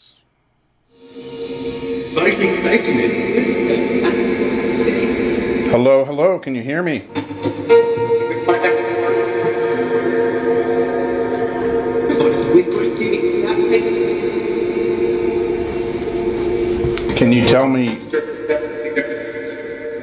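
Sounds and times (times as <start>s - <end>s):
droning overlapping held tones: 0.9s - 20.0s.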